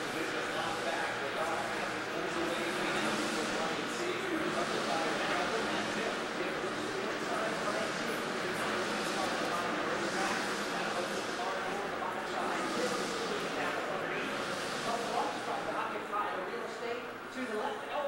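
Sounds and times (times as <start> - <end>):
indistinct crowd chatter: 0.0 - 18.0.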